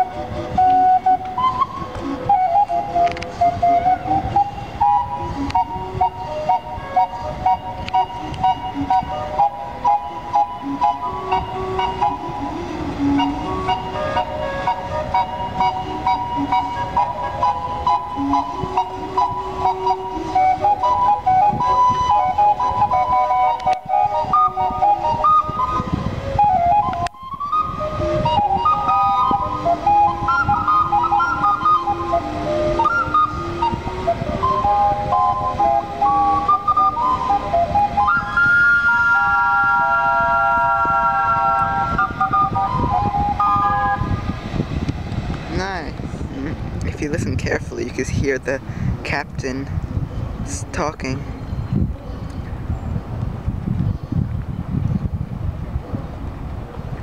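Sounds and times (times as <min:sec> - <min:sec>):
steam calliope playing a tune: 0:00.0 - 0:45.2.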